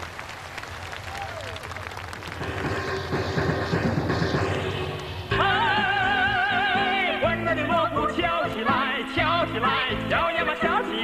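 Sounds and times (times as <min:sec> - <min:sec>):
crowd applauding: 0:00.0 - 0:05.2.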